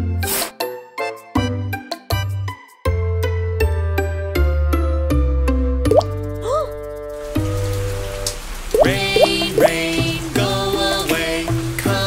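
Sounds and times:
cartoon raindrop plop effects: 5.9 - 6.2, 8.2 - 9.9
children's song backing music: 8.8 - 12.0.

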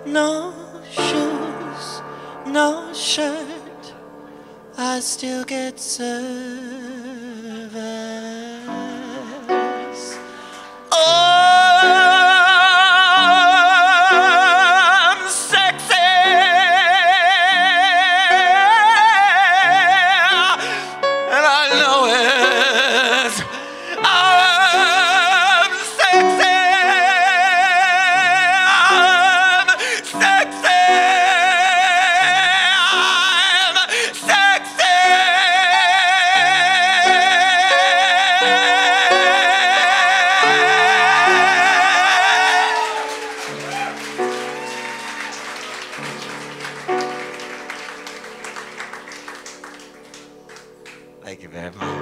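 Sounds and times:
person singing with vibrato: 0.0 - 44.5
piano chords: 0.0 - 52.0
audience applause: 39.8 - 51.1.

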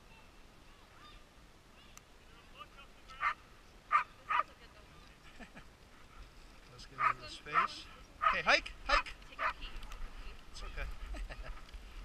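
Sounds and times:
dogs barking: 3.2 - 4.5, 7.0 - 9.6.

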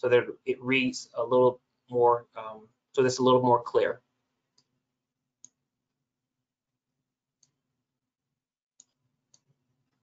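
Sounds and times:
faint computer mouse clicks: 8.8 - 9.5.

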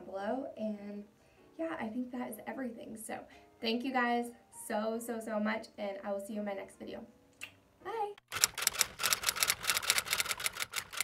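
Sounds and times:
typewriter key clicks: 8.3 - 11.0.

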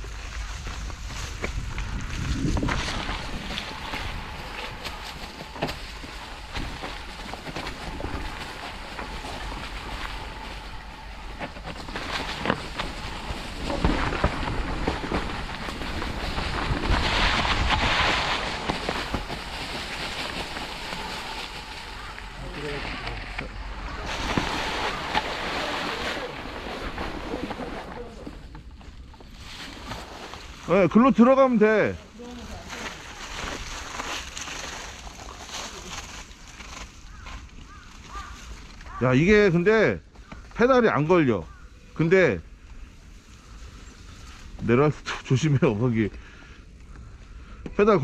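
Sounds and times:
wind buffeting microphone: 0.0 - 28.2
bike tyres rolling over leaves: 0.0 - 48.0.

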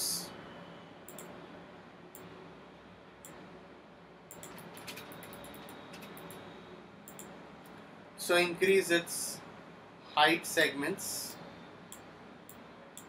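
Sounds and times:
computer mouse clicking: 1.1 - 1.3, 4.3 - 6.4, 7.1 - 7.3.

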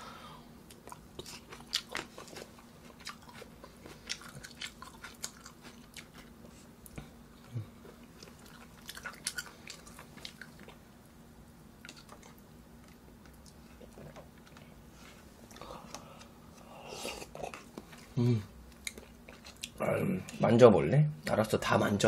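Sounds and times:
person chewing food: 0.7 - 11.0, 11.8 - 20.4.

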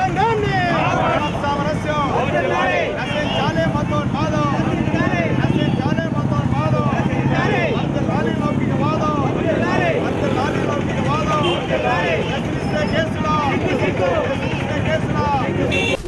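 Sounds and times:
overlapping protest voices: 0.0 - 16.0
vehicle engine humming: 0.0 - 16.0.

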